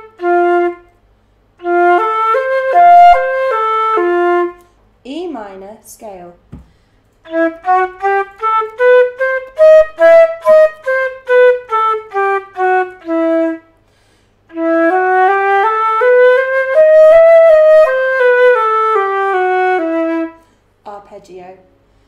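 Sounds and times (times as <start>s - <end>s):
flute playing a scale: 0.0s - 1.0s, 1.6s - 4.6s, 7.2s - 13.8s, 14.5s - 20.4s.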